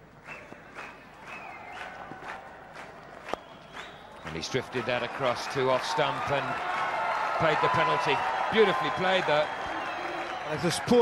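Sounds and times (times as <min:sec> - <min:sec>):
stadium crowd: 0:00.0 - 0:11.0.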